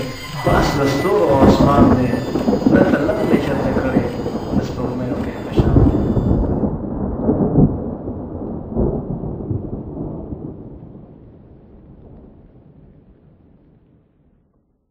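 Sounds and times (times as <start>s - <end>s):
low rolling thunder: 0.0s - 14.6s
rain: 0.0s - 14.9s.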